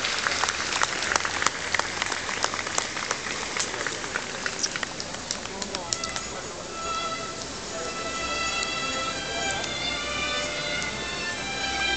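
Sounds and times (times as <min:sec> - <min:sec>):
audience clapping: 0:00.0 - 0:06.2.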